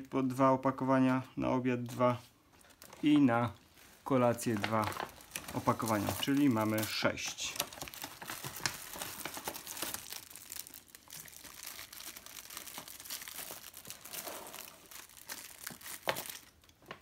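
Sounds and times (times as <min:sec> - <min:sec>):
plastic packaging crinkling: 0:02.6 - 0:17.0.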